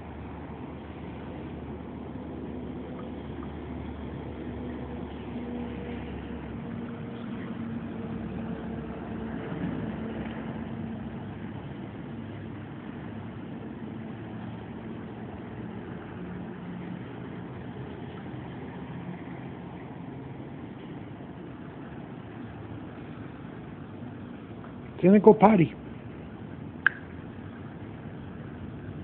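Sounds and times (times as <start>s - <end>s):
faint constant tone: 0.0s - 29.0s
low mechanical hum: 0.0s - 29.0s.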